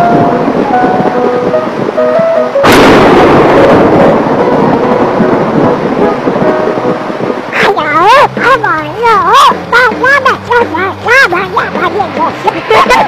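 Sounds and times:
light musical notes: 0:00.0 - 0:13.0
rain: 0:00.0 - 0:13.0
thunder rumbling: 0:00.0 - 0:13.0
loud thunderclap: 0:02.6 - 0:07.7.

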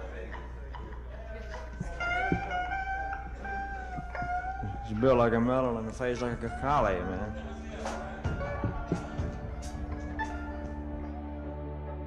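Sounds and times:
faint knocks: 0:00.4 - 0:05.2, 0:07.8 - 0:10.8.

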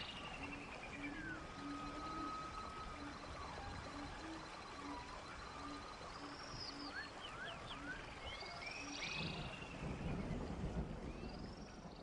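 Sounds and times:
faint chirping calls: 0:00.0 - 0:10.3.

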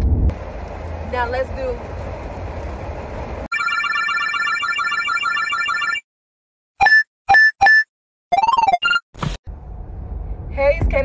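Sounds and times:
trilling telephone ring: 0:03.5 - 0:06.0.

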